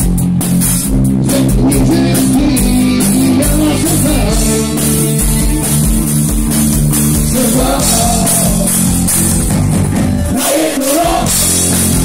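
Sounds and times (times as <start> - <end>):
drum kit: 0.0 - 12.0
electric bass guitar: 0.0 - 12.0
guitars: 0.0 - 12.0.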